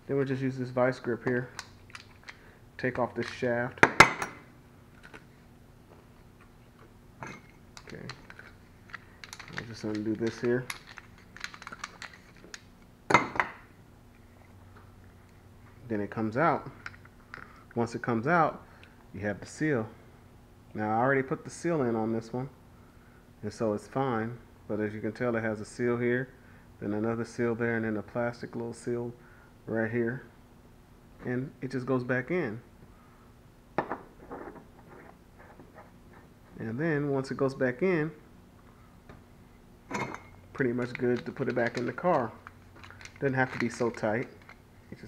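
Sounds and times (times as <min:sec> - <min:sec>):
tool set down: 0:03.8 - 0:04.4, 0:13.1 - 0:13.6, 0:33.8 - 0:34.7
steel parts clinking: 0:07.2 - 0:12.6.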